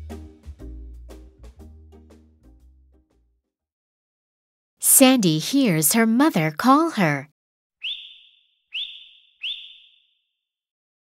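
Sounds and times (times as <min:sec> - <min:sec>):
high whistled calls: 0:07.8 - 0:10.2.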